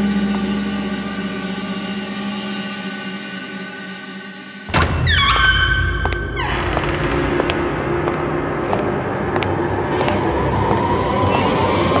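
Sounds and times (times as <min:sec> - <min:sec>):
suspense background music: 0:00.0 - 0:12.0.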